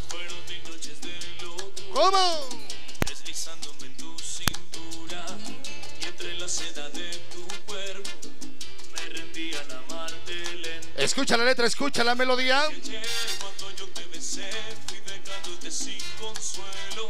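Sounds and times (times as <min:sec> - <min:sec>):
salsa music: 0:00.0 - 0:17.0
sharp clicks: 0:04.4 - 0:04.7.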